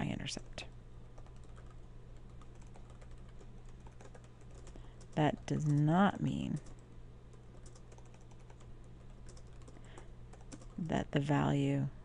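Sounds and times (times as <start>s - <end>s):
faint keyboard typing: 0.0s - 10.9s.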